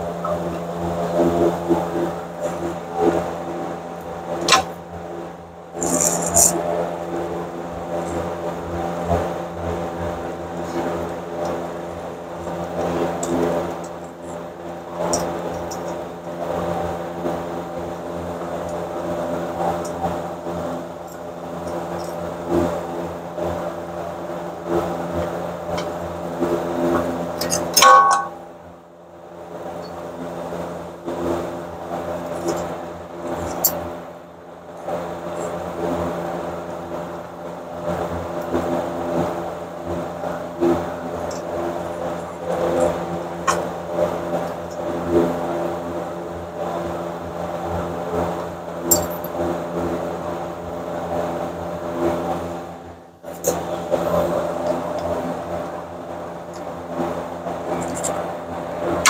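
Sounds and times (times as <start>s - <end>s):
steady machine hum: 0.0s - 59.0s
metallic ring: 5.8s - 6.5s, 27.4s - 28.5s, 48.9s - 49.3s.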